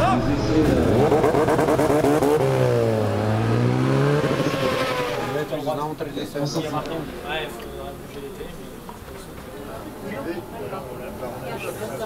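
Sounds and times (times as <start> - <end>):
motorcycle engine revving: 0.0 - 5.7.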